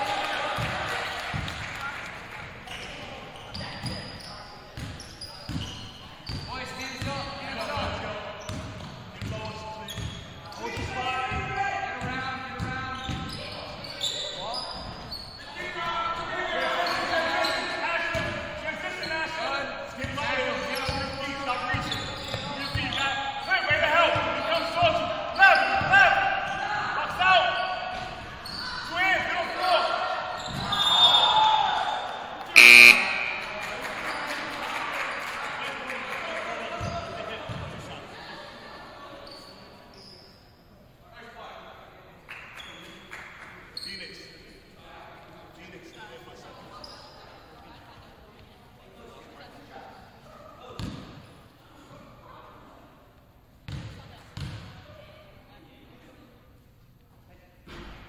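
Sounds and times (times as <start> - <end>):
voices echoing in gym: 0.0 - 58.0
referee's whistle blast: 32.5 - 33.6.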